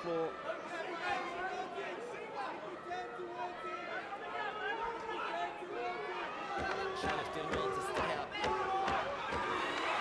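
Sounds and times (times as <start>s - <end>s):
crowd shouting and chattering: 0.0s - 10.0s.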